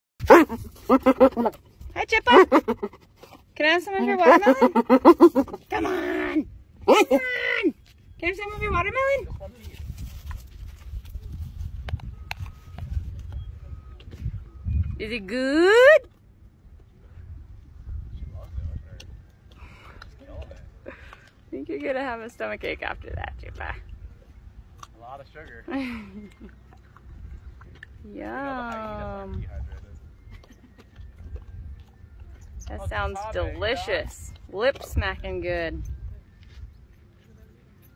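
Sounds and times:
hyena crunching watermelon: 0.2 - 6.3, 23.8 - 25.3, 26.2 - 32.7
wind rumble on microphone: 5.4 - 6.9, 8.0 - 21.1, 22.6 - 24.9, 26.9 - 37.1.

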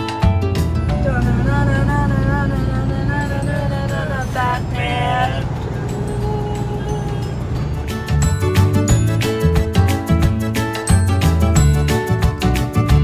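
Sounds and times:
truck cab rumble: 0.3 - 11.8
person singing: 0.9 - 7.6.

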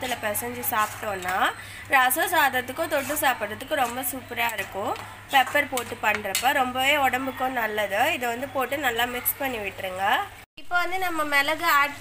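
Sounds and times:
metal spatula scraping a pan: 0.0 - 1.4
woman speaking: 0.0 - 12.0.

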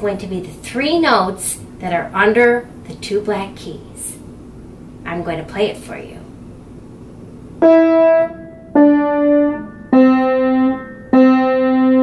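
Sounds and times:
piano single notes: 7.6 - 12.0.

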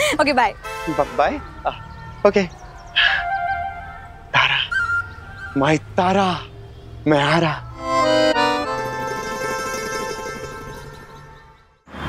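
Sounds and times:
accordion-like chords: 0.6 - 1.8, 7.2 - 11.8.

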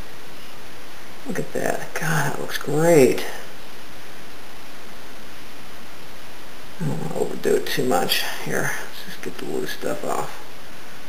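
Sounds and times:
background hiss: 0.0 - 11.0
man's voice: 6.8 - 10.4.

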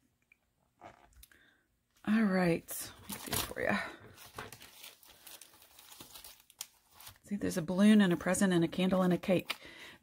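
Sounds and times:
plastic sleeve crinkling: 2.9 - 7.3.

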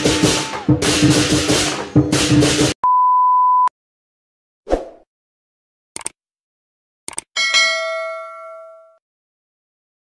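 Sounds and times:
notification bell ding: 7.4 - 9.0.

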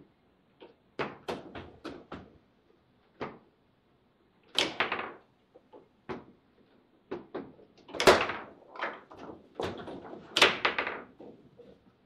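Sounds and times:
foosball knocks and clacks: 0.6 - 2.4, 3.1 - 3.5, 4.5 - 6.4, 7.1 - 11.4.

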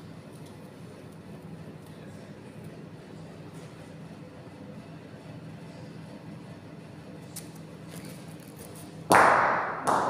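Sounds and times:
bocce balls clacking: 9.1 - 10.0.

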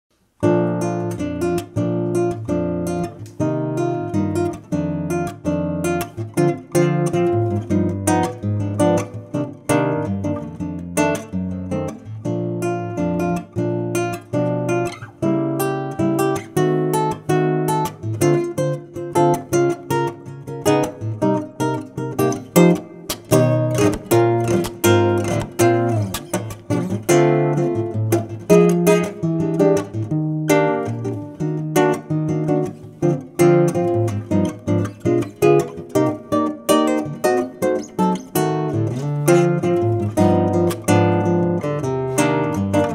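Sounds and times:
classical guitar fingerstyle: 0.2 - 42.9.

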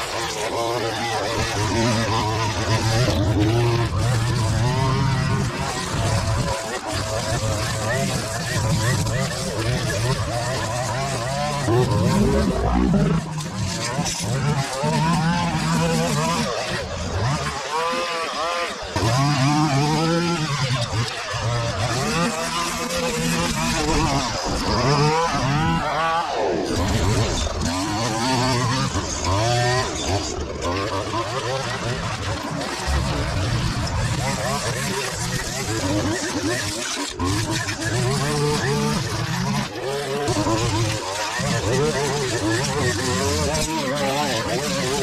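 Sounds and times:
string trimmer cutting grass: 0.0 - 45.0.

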